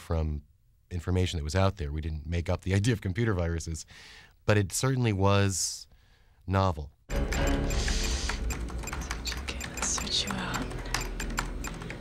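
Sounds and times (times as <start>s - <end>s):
fast keyboard typing: 7.1s - 12.0s.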